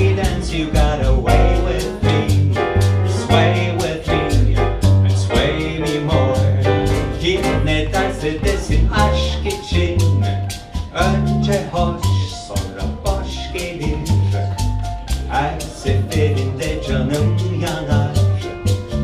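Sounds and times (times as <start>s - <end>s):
crisp rhythmic ticks: 0.0s - 19.0s
double bass: 0.0s - 19.0s
man singing: 0.0s - 19.0s
piano accompaniment: 0.0s - 19.0s.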